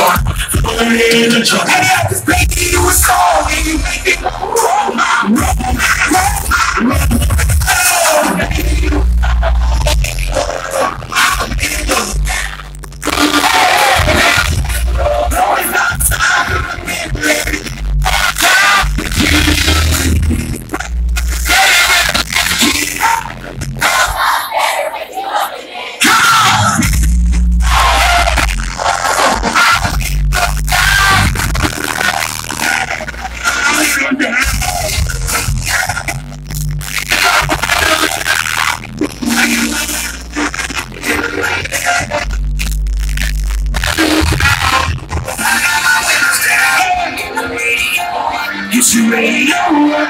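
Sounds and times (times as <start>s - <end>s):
crowd noise: 0.0s - 50.0s
live music with heavy bass: 0.0s - 50.0s.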